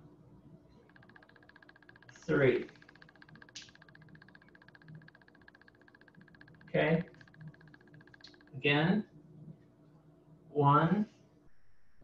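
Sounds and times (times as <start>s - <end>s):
faint rapid pulsing buzz: 0.0s - 10.4s, 11.5s - 12.0s.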